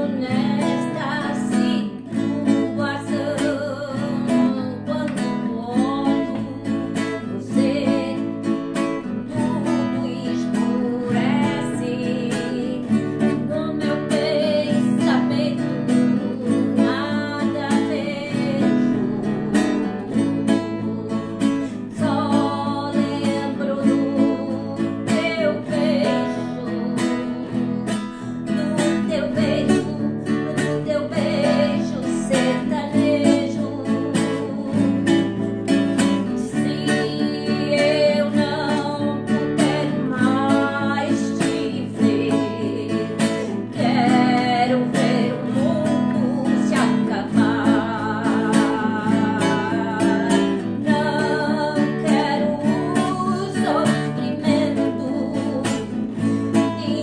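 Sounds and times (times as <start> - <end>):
strummed acoustic guitar: 0.0 - 57.0
woman singing: 0.0 - 57.0.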